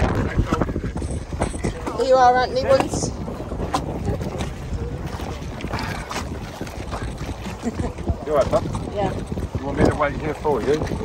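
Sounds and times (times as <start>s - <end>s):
water splashing and lapping: 0.0s - 11.0s
wind buffeting microphone: 0.0s - 11.0s.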